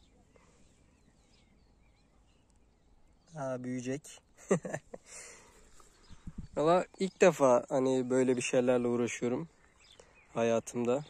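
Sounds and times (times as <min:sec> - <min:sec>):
man chuckling: 0:04.4 - 0:05.5.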